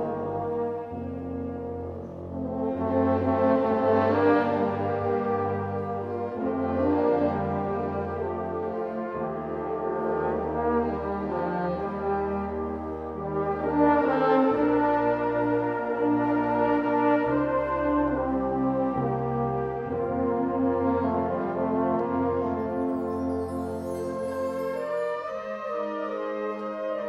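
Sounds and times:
wind band playing sustained chords: 0.0 - 27.0.

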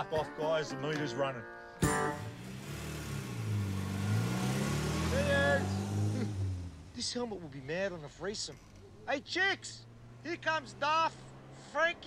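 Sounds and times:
van engine running: 1.8 - 12.0.

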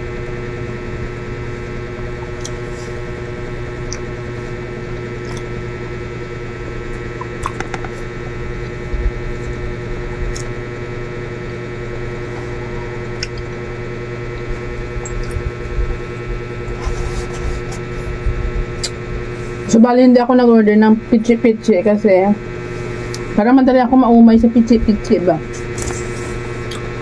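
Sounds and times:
steady tonal hum: 0.0 - 27.0
chewing sticky rice cake: 2.0 - 5.8.

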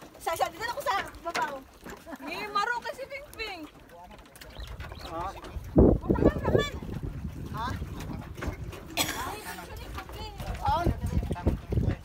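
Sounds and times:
wind rumbling on microphone: 4.4 - 12.0.

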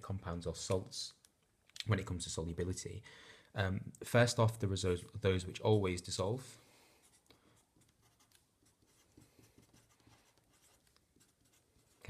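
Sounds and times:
pen scratching on paper: 7.0 - 12.0.

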